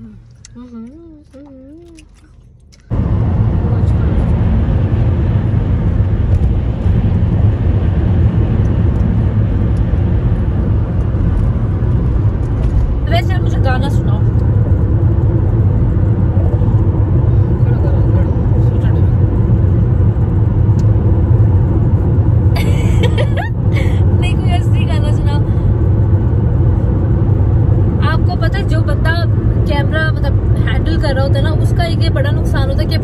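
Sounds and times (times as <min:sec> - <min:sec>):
car interior road noise: 0:00.0 - 0:33.0.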